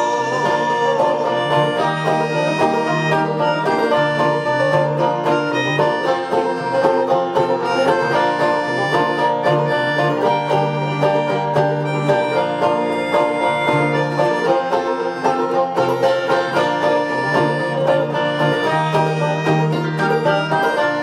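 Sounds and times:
dobro notes: 0:00.0 - 0:21.0
fast picked banjo: 0:00.0 - 0:21.0
held melodica notes: 0:00.0 - 0:21.0.

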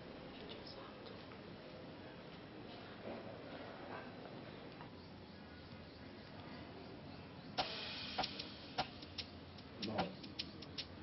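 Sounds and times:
sharp ticks: 0:07.6 - 0:11.0.

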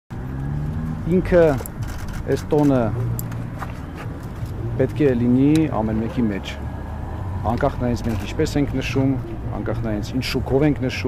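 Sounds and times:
man speaking: 0:01.1 - 0:01.7, 0:02.3 - 0:03.0, 0:04.7 - 0:06.6, 0:07.4 - 0:11.0.

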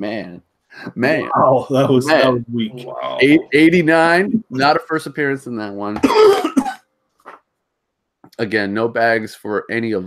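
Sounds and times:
person coughing: 0:06.0 - 0:06.8.

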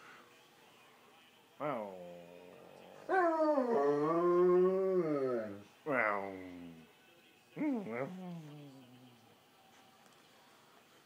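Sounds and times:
dog howling: 0:02.0 - 0:05.6.

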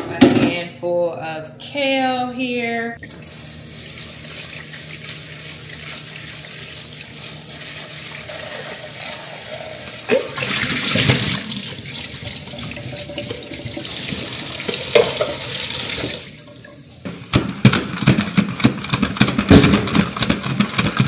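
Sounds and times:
faucet sprayer running water: 0:03.0 - 0:17.3
plastic basket clunks: 0:17.3 - 0:21.0.

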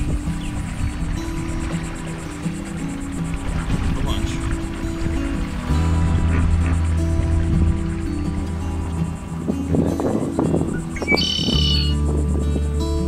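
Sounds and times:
background music with low chords: 0:00.0 - 0:13.0.

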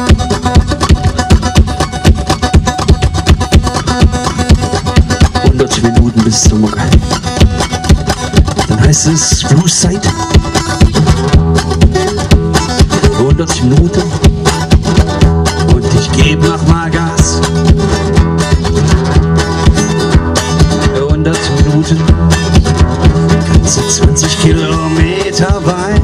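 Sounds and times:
harmonica: 0:00.0 - 0:13.3
acoustic guitar picking blues: 0:00.0 - 0:26.0.

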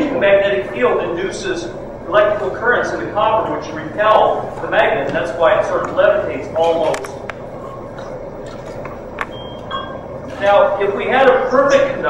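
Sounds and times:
steady background noise: 0:00.0 - 0:12.0
short high beeps: 0:09.3 - 0:10.1.

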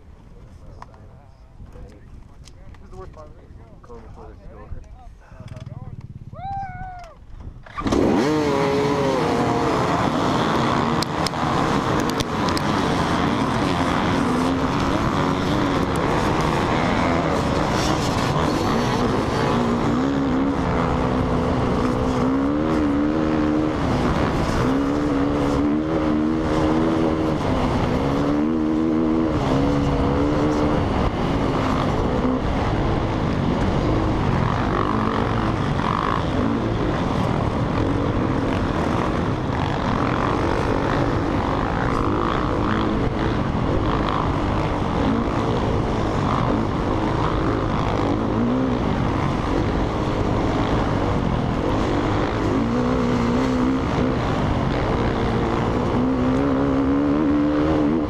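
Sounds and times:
dirt bike engines: 0:00.0 - 0:58.0
onboard bike engine accelerating: 0:07.4 - 0:58.0.

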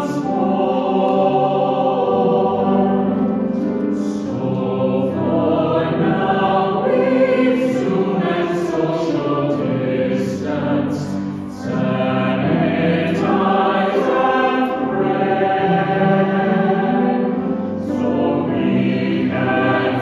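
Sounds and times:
choir singing in parts: 0:00.0 - 0:20.0.

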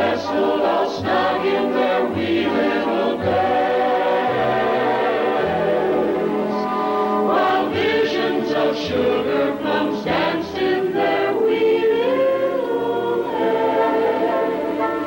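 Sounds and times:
choir singing held notes: 0:00.0 - 0:15.0.

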